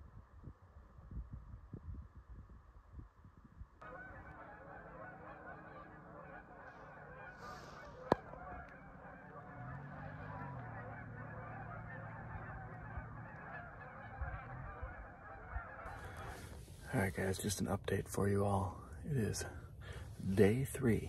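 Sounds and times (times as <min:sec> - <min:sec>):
geese honking: 0:03.8 - 0:21.0.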